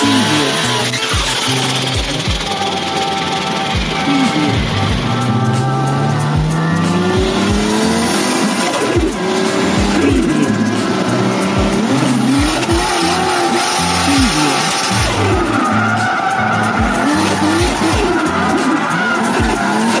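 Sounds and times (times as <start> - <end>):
music with thumping beat: 0.0 - 20.0
person singing: 0.0 - 20.0.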